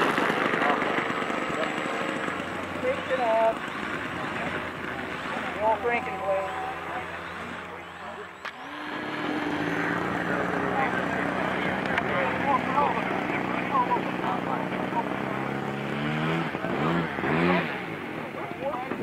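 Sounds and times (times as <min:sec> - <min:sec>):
model airplane motor flying overhead: 0:00.0 - 0:19.0
people talking: 0:00.0 - 0:19.0.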